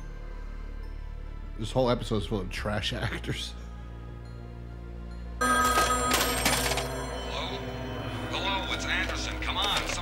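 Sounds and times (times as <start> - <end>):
telephone ringing: 5.4 - 10.0.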